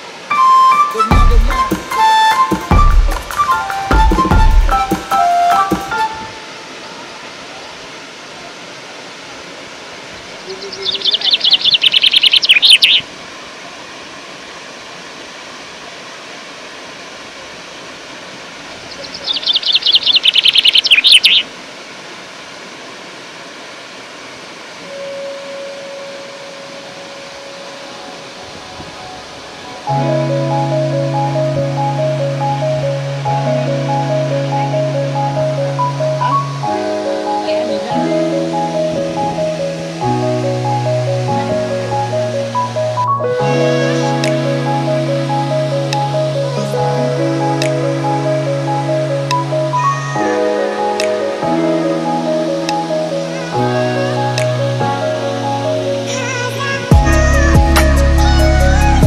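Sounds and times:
waterfall rushing: 0.0s - 59.0s
background music with beat: 0.8s - 6.1s, 44.2s - 44.8s, 46.8s - 48.2s, 56.9s - 59.0s
bird trilling: 10.4s - 13.0s, 18.9s - 21.5s.

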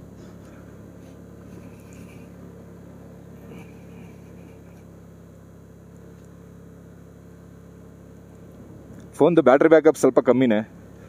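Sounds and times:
motorcycle engine drone: 0.0s - 11.0s
road and wind noise: 0.0s - 11.0s.

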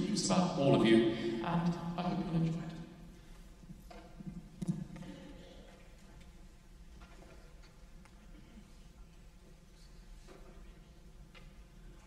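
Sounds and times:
faint low steady hum: 0.0s - 12.0s.

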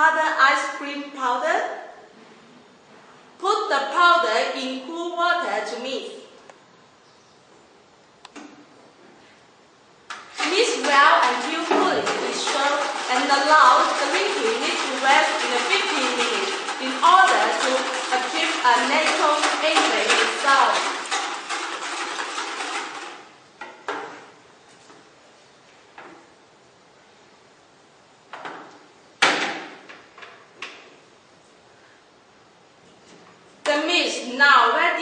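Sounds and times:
bucket handles clattering: 10.1s - 23.2s
plastic buckets knocking: 10.1s - 24.3s.

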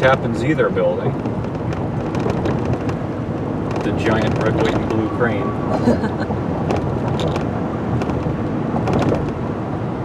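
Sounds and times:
engine rumble: 0.0s - 10.0s
road and tyre noise: 0.0s - 10.0s.

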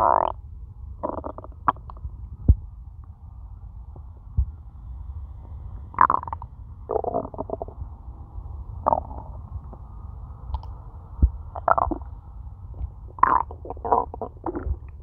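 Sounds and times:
stomach growling: 0.0s - 0.4s, 1.0s - 2.0s, 6.0s - 7.8s, 8.8s - 9.8s, 11.5s - 12.1s, 12.7s - 15.0s
squelchy stomach gurgles: 1.0s - 1.9s, 6.0s - 7.8s, 8.9s - 9.3s, 11.6s - 12.1s, 13.2s - 14.9s.

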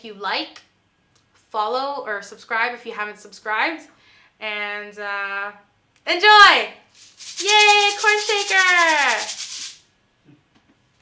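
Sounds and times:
shaker rattling: 6.9s - 9.9s.

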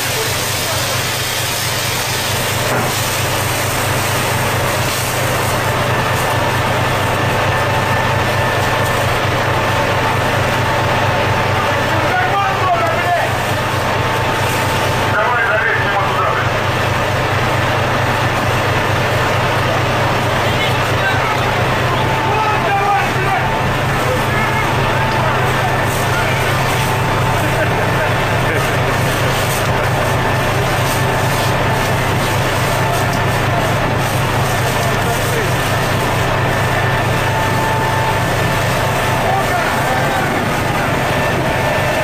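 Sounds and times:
boat machinery drone: 0.0s - 42.0s
water spraying from a hose: 0.0s - 42.0s.

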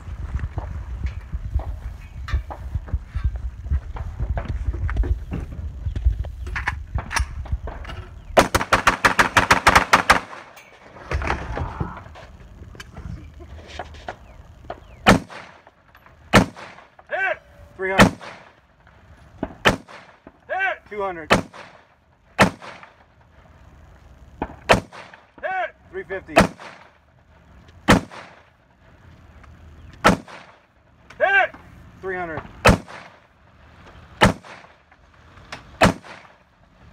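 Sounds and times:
rapid gunshots: 8.4s - 10.5s, 15.0s - 15.7s, 16.3s - 16.9s, 18.0s - 18.6s, 19.4s - 20.3s, 21.3s - 23.0s, 24.4s - 25.3s, 26.3s - 27.0s, 27.9s - 28.5s, 30.0s - 30.7s, 32.6s - 33.2s, 34.2s - 34.8s, 35.8s - 36.4s
rifle shots with echo: 8.4s - 10.6s, 15.0s - 15.7s, 16.3s - 17.0s, 17.9s - 18.6s, 19.4s - 20.4s, 21.3s - 23.1s, 24.4s - 25.4s, 26.3s - 27.1s, 27.8s - 28.6s, 30.0s - 30.7s, 32.6s - 33.3s, 34.2s - 34.8s, 35.8s - 36.5s.

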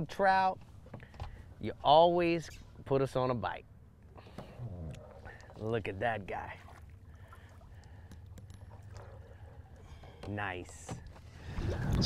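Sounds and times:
water lapping against boat hull: 3.8s - 12.0s.

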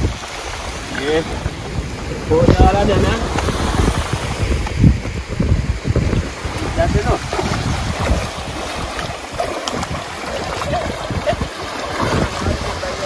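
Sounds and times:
wading through river water: 0.0s - 13.0s
wind buffeting microphone: 0.0s - 13.0s.

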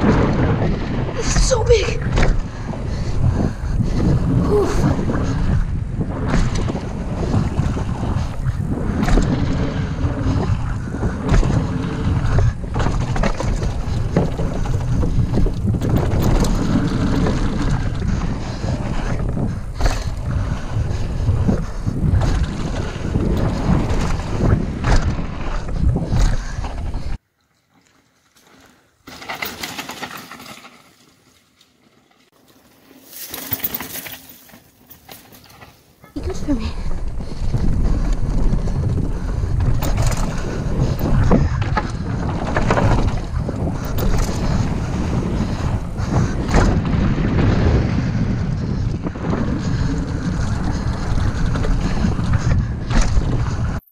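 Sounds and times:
tyre rumble: 0.0s - 27.2s, 32.5s - 53.9s
wind buffeting microphone: 0.0s - 27.2s, 36.1s - 53.9s
bike rattling: 0.0s - 53.9s.

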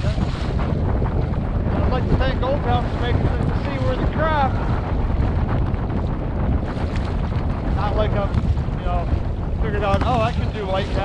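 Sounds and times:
water splashing against kayak hull: 0.0s - 11.0s
wind buffeting microphone: 0.0s - 11.0s.

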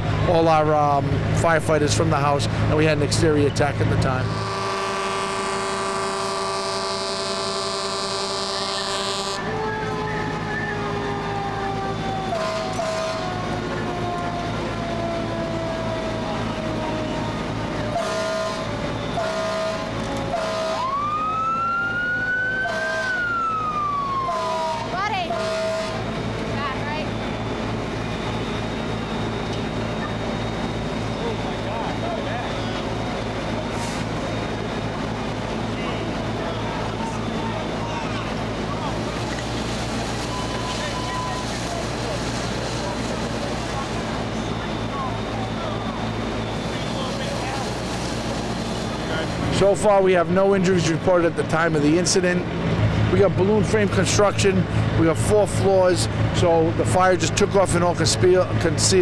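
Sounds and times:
fire engine sirens: 0.0s - 59.0s
idling engines and pumps rumbling: 0.0s - 59.0s
steady horn-like tone: 4.2s - 9.4s, 18.0s - 20.8s.

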